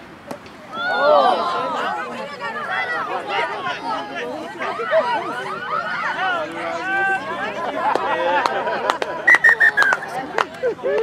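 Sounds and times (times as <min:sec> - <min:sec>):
sideline voices: 0:00.5 - 0:11.0
referee's whistle blasts: 0:09.3 - 0:10.1.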